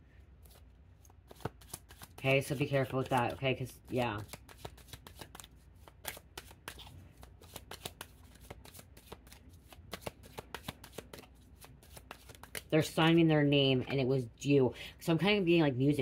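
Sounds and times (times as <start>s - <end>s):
cards being shuffled by hand: 0.4s - 13.0s.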